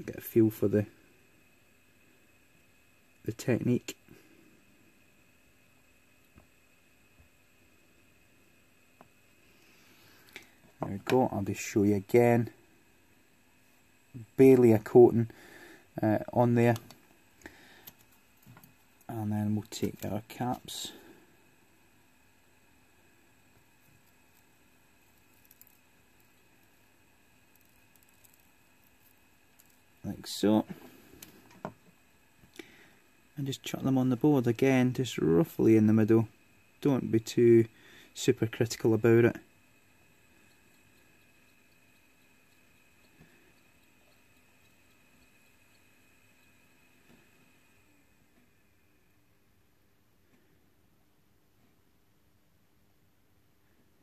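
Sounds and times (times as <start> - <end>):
faint steady hum: 0.0 - 54.0
faint ticks: 40.2 - 47.4.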